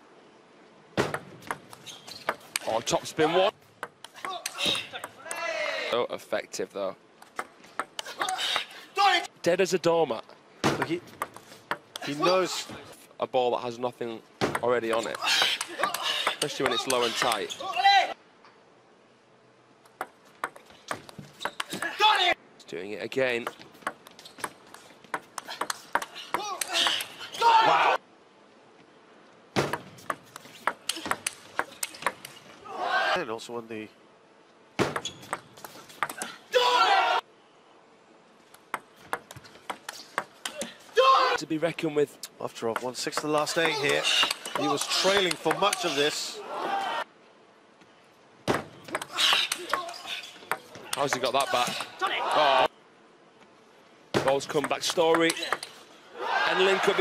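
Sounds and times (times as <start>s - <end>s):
person speaking: 12.0s - 18.1s.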